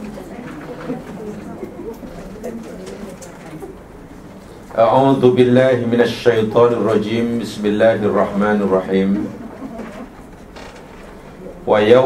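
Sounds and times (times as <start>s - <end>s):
man reciting: 4.7s - 9.3s, 11.6s - 12.0s
faint creak: 10.0s - 11.5s.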